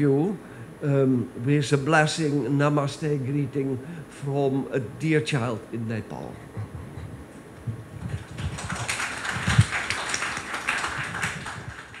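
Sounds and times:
audience applauding: 8.0 - 12.0.

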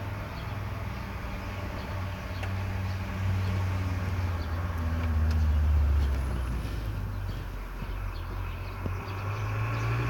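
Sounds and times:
low motor rumble: 0.0 - 10.0.

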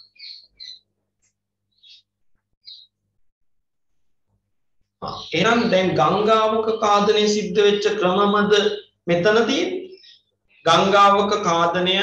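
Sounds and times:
small bird chirping: 0.0 - 3.1, 4.9 - 11.9.

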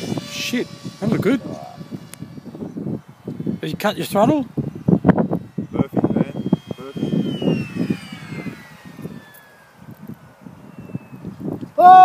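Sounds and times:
electric motor and propeller whine: 0.0 - 12.0
wind buffeting microphone: 0.0 - 12.0.

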